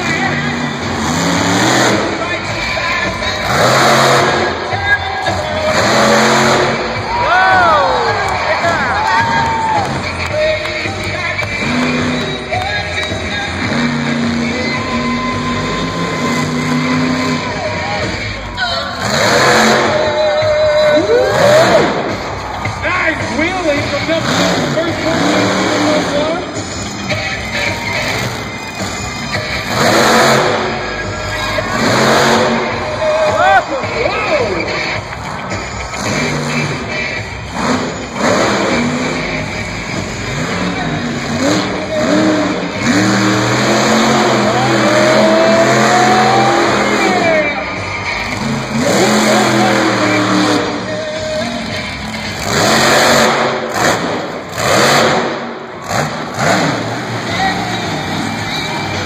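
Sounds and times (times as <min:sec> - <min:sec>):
arena music: 0:00.0 - 0:59.0
monster truck engine revving: 0:00.0 - 0:59.0
pa voice: 0:33.1 - 0:34.9.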